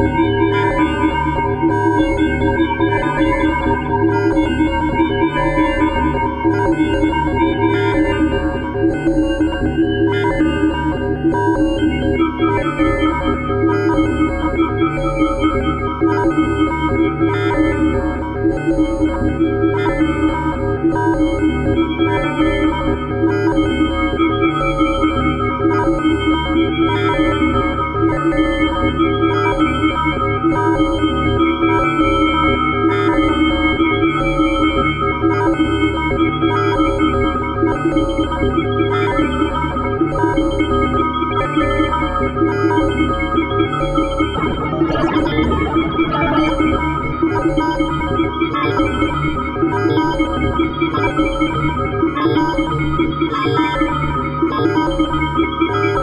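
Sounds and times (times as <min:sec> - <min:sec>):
pulsing low bass: 0:43.1 - 0:49.7
dense sustained synth tones: 0:43.4 - 0:49.6
experimental electronic music: 0:43.4 - 0:52.4.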